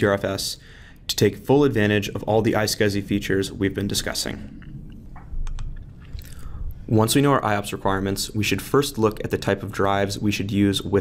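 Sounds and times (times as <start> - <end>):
man narrating: 0.0 - 4.6, 6.8 - 11.0
low rumble: 1.3 - 10.3
mouth clicks: 4.3 - 6.8.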